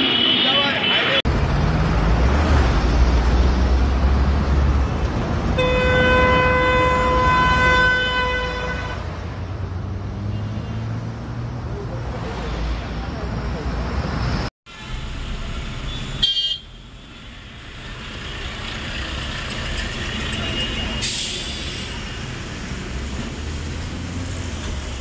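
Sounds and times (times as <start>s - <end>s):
voices: 0.0s - 1.2s
bus and truck passing: 0.0s - 25.0s
vehicle horn blast: 5.6s - 9.0s, 15.9s - 16.7s.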